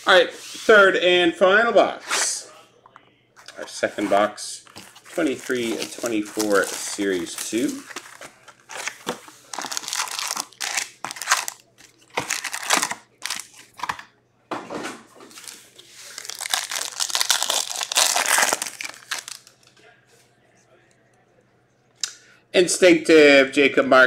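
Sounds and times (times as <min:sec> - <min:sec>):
foil packs crinkling: 0:04.7 - 0:14.0, 0:15.3 - 0:19.7
pack being torn open: 0:05.3 - 0:14.0, 0:16.2 - 0:19.6.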